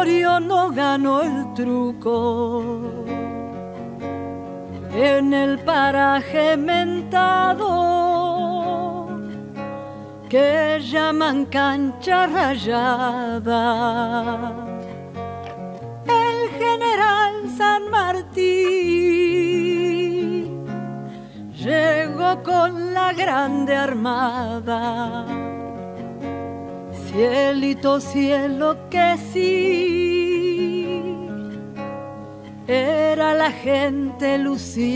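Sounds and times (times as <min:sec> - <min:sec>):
classical guitar strumming chords: 0:00.0 - 0:34.9
woman singing folk melody: 0:00.0 - 0:34.9.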